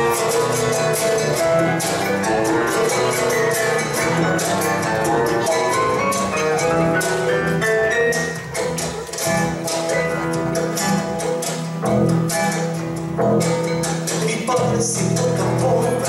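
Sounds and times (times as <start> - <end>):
acoustic guitars strummed and plucked: 0.0 - 16.0
drum kit percussion: 0.0 - 16.0
upright bass: 0.0 - 16.0.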